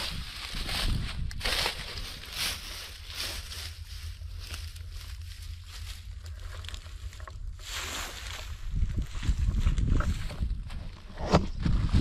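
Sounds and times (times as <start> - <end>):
dry grass crackling and rustling: 0.0 - 12.0
wind rumbling on microphone: 0.0 - 12.0.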